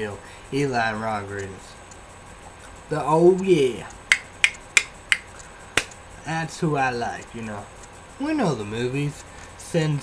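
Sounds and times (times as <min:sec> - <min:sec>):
finger snapping: 0:04.1 - 0:06.0.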